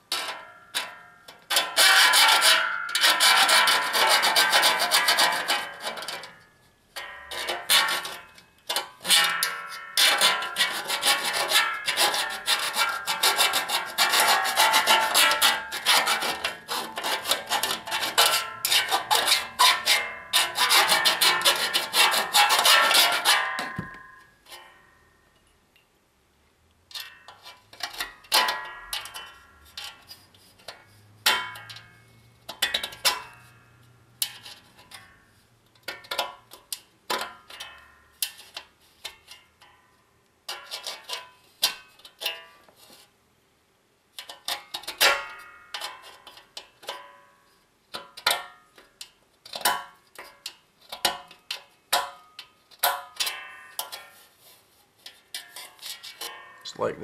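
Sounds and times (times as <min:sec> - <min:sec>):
blade scraping metal edge: 0:00.1 - 0:06.4, 0:07.0 - 0:24.7, 0:55.0 - 0:56.6.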